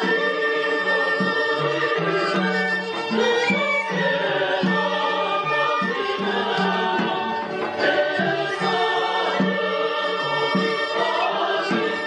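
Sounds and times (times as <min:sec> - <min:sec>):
choir singing: 0:00.0 - 0:12.0
instrumental accompaniment: 0:00.0 - 0:12.0.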